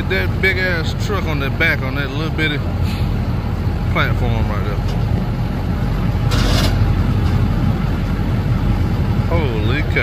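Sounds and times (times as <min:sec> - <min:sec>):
heavy engine rumbling: 0:00.0 - 0:10.0.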